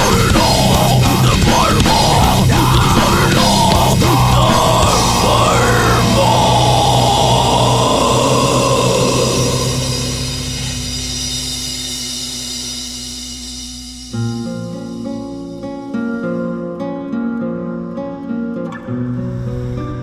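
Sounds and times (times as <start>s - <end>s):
drums: 0.0s - 16.4s
distorted guitars: 0.0s - 20.0s.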